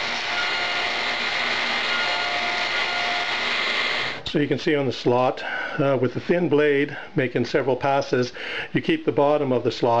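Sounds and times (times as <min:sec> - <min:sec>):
table saw cutting wood: 0:00.0 - 0:04.2.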